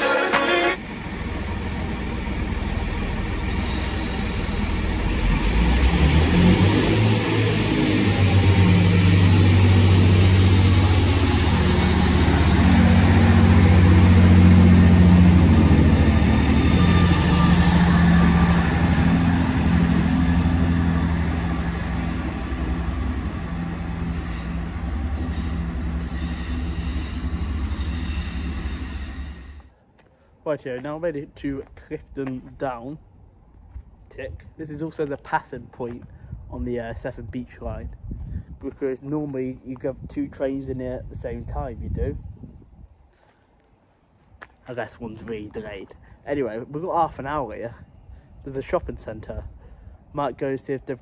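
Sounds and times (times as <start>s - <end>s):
diesel train engine drone: 0.0s - 30.4s.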